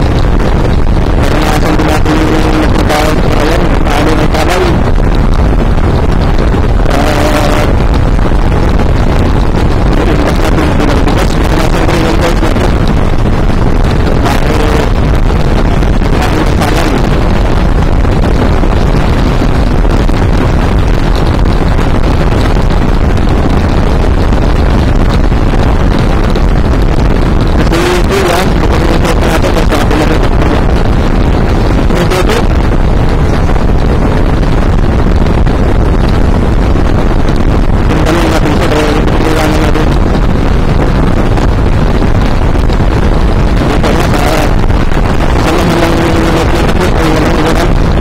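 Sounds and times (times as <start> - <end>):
wind noise on microphone: 0.0 - 48.0.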